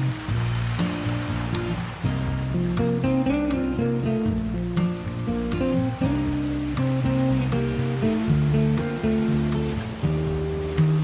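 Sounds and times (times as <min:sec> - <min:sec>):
ocean waves on a beach: 0:00.0 - 0:11.0
classical guitar slow notes: 0:00.1 - 0:11.0.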